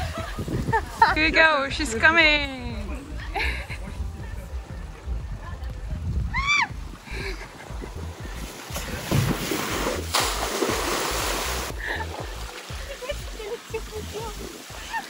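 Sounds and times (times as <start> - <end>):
water rushing down slide: 8.3 - 15.0
splash into pool: 8.6 - 13.4
voices: 12.7 - 15.0.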